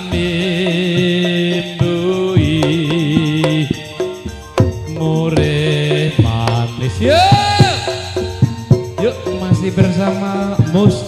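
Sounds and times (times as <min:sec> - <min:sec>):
sharp drum strokes: 0:02.4 - 0:11.0
gong and metallophone tones: 0:03.0 - 0:10.9
man chanting through microphone: 0:05.1 - 0:08.3.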